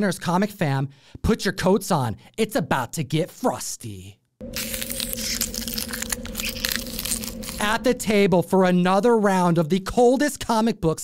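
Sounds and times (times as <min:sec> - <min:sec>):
steady low hum: 0:04.4 - 0:09.0
ice cracking and crunching: 0:04.5 - 0:08.0.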